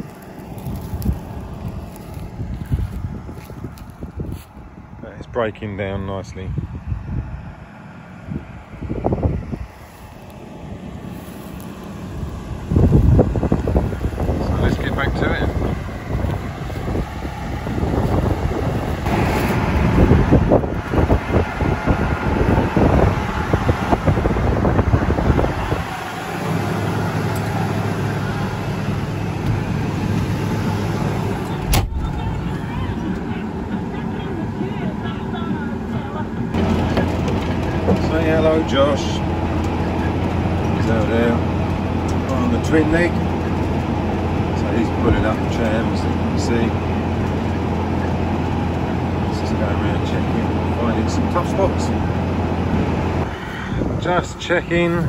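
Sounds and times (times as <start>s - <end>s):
tractor engine running: 0.0s - 55.0s.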